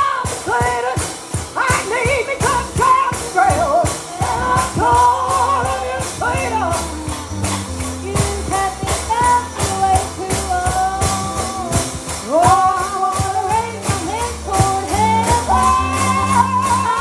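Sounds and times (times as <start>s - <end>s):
person singing: 0.0s - 7.3s, 8.0s - 17.0s
band playing: 0.0s - 17.0s.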